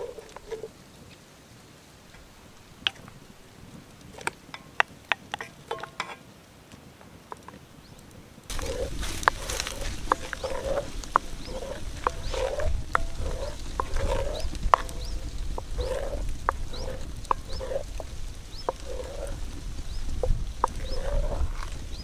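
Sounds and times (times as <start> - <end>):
wooden spoon stirring liquid: 8.5 - 22.0.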